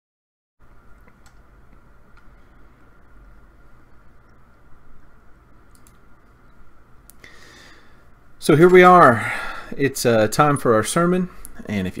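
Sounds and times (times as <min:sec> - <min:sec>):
faint hum and hiss: 0:00.6 - 0:12.0
soft clicks: 0:00.9 - 0:02.6, 0:04.2 - 0:04.6, 0:05.6 - 0:07.2.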